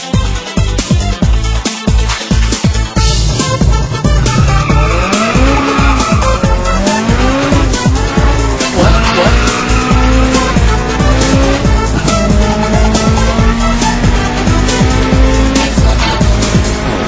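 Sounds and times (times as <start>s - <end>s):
loud music with steady beat: 0.0s - 17.0s
car engine revving hard: 3.2s - 17.0s.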